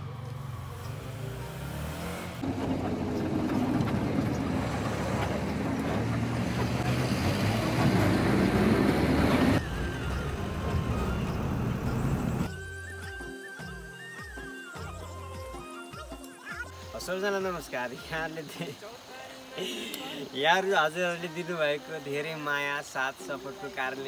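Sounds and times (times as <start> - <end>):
bus engine running: 0.0 - 12.5
road noise: 0.0 - 12.5, 16.7 - 21.8.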